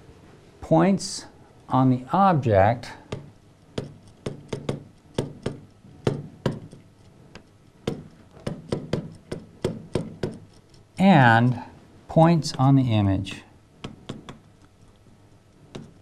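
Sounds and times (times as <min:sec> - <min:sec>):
stylus tapping on glass screen: 0:03.1 - 0:06.8, 0:13.8 - 0:14.5.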